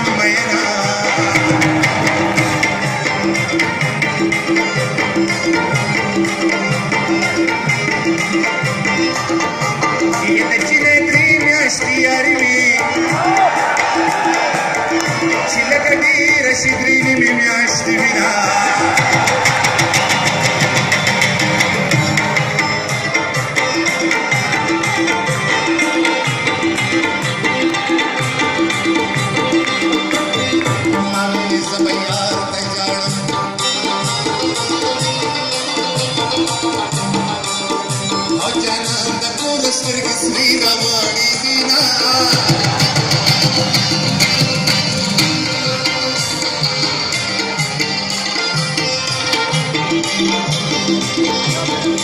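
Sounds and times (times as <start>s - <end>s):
plucked strings over fast beat: 0.0s - 52.0s.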